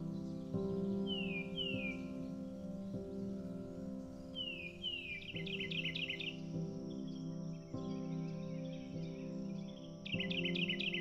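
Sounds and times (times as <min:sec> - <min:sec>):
ambient music chords: 0:00.0 - 0:11.0
birdsong whistles and chirps: 0:00.0 - 0:11.0.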